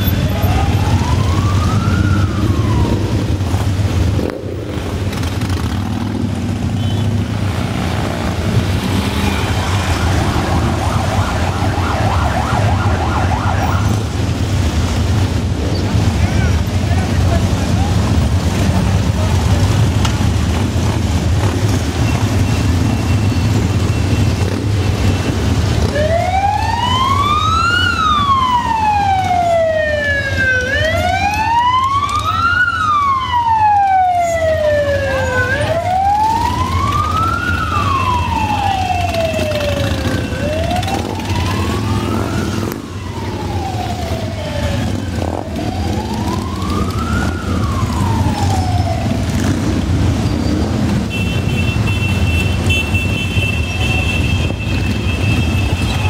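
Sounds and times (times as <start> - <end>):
siren wailing: 0.0 - 4.0, 7.6 - 14.7, 25.4 - 50.5
motorcycles rumbling: 0.0 - 56.0.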